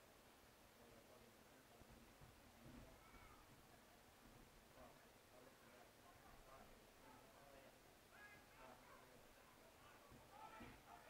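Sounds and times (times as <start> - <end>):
distant shout: 9.8 - 11.0.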